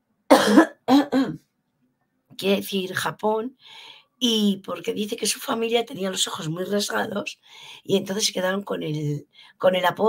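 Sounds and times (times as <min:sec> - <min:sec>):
woman coughing: 0:00.3 - 0:01.4.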